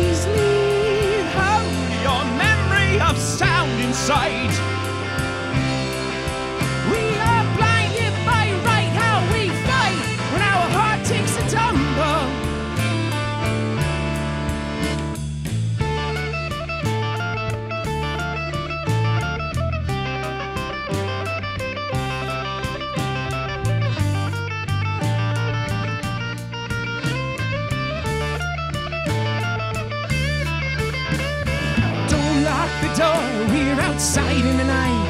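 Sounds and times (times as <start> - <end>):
electric guitar melodic lead: 0.0 - 35.0
steady drum beat: 0.0 - 35.0
sustained bass notes: 0.0 - 35.0.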